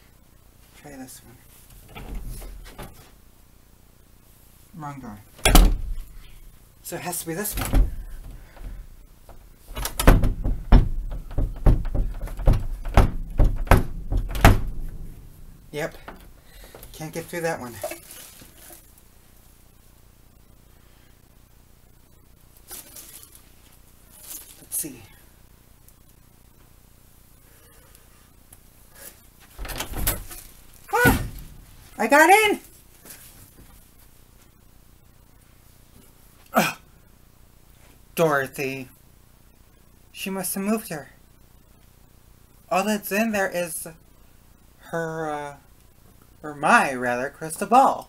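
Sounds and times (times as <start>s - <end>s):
door knocking against frame: 9.7s - 15.2s.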